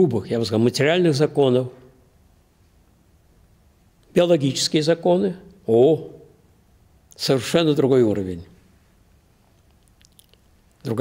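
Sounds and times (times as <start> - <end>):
man speaking: 4.1 - 6.3, 7.2 - 8.5.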